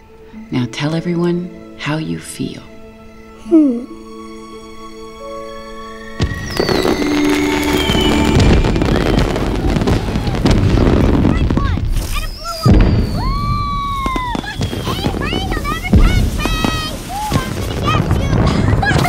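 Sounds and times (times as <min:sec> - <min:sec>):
soft orchestral chords: 0:00.0 - 0:11.3
arching whistle-like tones: 0:05.2 - 0:17.5
whistling glides: 0:05.4 - 0:10.5, 0:12.0 - 0:15.4
crackling sparkling sound effects: 0:06.2 - 0:19.0.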